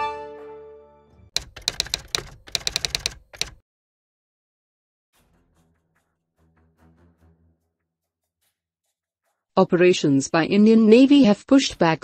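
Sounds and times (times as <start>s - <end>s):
keystroke clicks: 1.4s - 3.6s.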